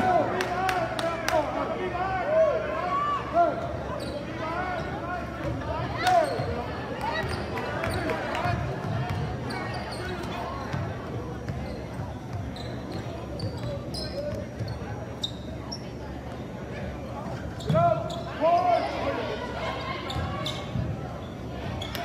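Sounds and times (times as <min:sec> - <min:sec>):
sneaker squeaks: 0:03.9 - 0:16.5, 0:17.2 - 0:22.0.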